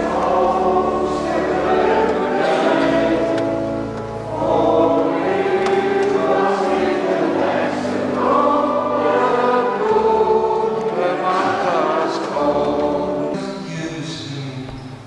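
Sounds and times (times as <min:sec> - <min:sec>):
choir singing held notes: 0:00.0 - 0:14.6.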